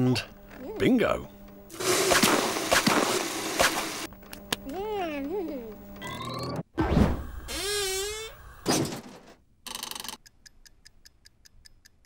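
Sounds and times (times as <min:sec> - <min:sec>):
oven timer ticking: 0:10.1 - 0:12.0.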